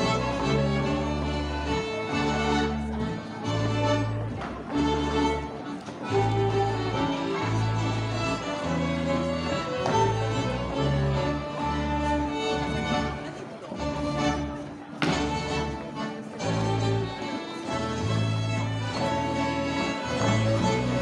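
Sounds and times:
fiddles playing melody: 0.0 - 21.0.

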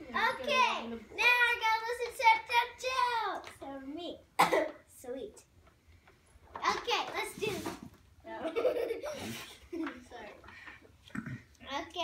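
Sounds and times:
girl coughing: 4.4 - 4.8.

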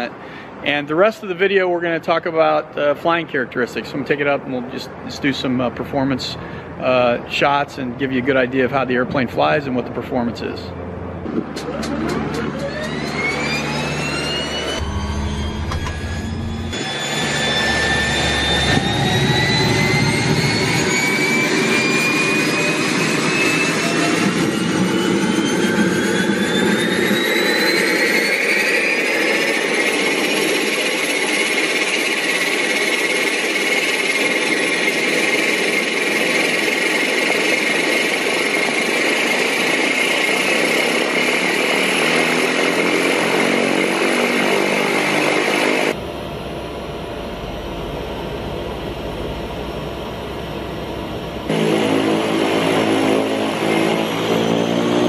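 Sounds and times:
turboprop turbine whine: 0.0 - 55.0
dull engine sound inside cabin: 10.2 - 39.6, 45.0 - 55.0.

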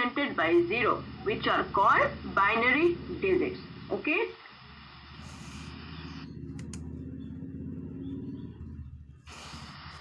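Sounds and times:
low machine hum: 0.0 - 10.0
faint hiss: 4.4 - 6.2.

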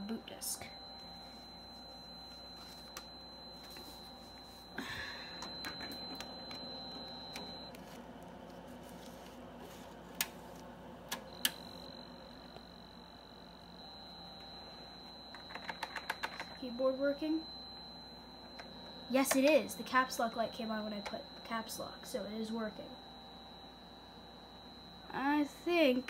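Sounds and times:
computer fan hum: 0.0 - 26.0.

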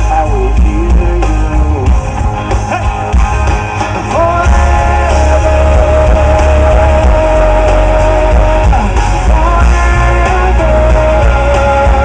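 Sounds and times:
live rock band through speakers: 0.0 - 12.0.

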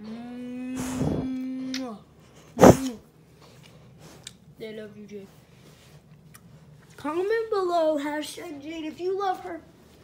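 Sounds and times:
drawn-out vocal sound: 0.6 - 1.5.

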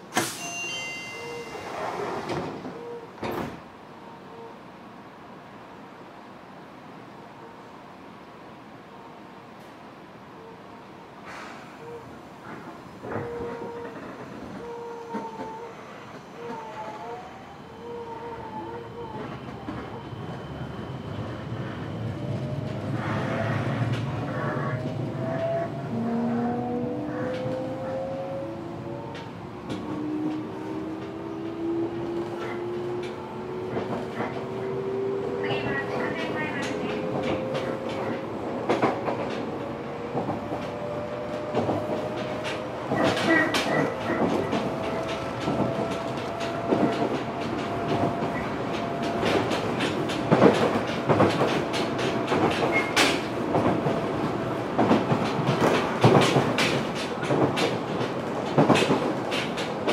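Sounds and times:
train running rumble: 18.6 - 59.9
wheels clicking over rail joints: 41.4 - 59.9.

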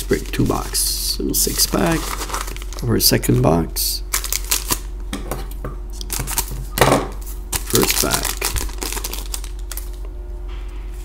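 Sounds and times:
foil pack crinkling and clicking: 0.0 - 2.9, 4.1 - 4.9, 6.0 - 6.8, 7.5 - 10.0.

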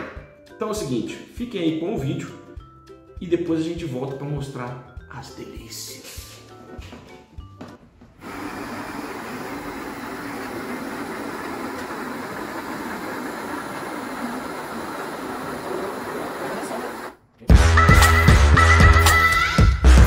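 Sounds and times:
cordless drill grinding malt: 8.2 - 17.2
loud music: 17.5 - 20.0.

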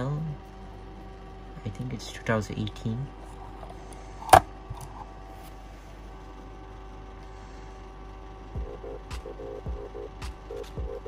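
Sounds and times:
low electrical hum: 0.0 - 11.0
background music with a beat: 8.5 - 11.0.

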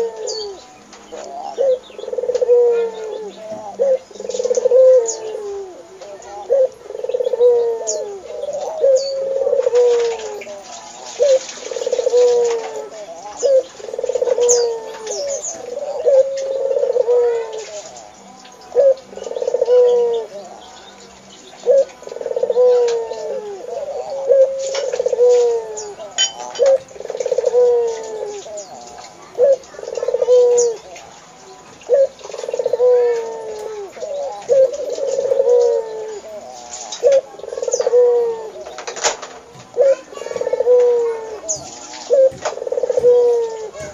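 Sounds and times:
dove cooing: 0.0 - 43.9
small birds chirping: 0.0 - 43.9.

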